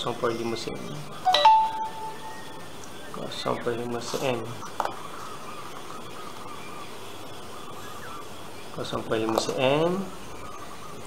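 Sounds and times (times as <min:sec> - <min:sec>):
two-note chime: 0:01.3 - 0:02.7.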